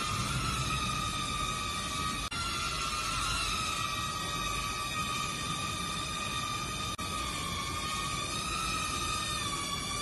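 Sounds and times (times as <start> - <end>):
toy drone propellers whining: 0.0 - 10.0.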